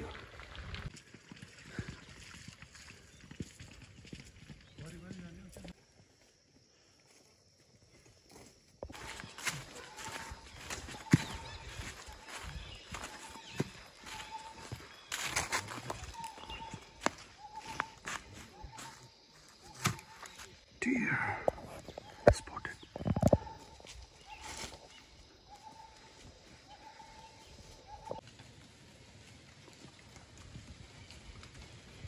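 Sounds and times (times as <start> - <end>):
footsteps on dry leaves: 8.8 - 20.6, 23.4 - 29.8.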